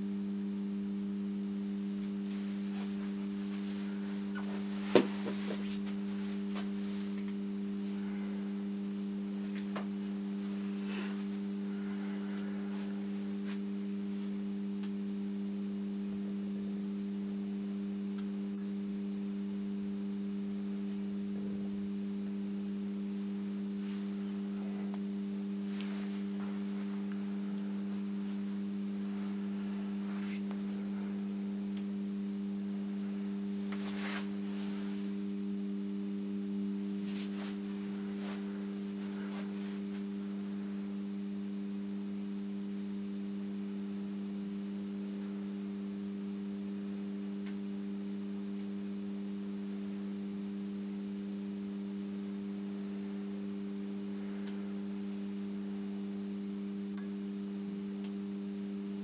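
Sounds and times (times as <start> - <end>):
electrical ballast hum: 0.0 - 59.0.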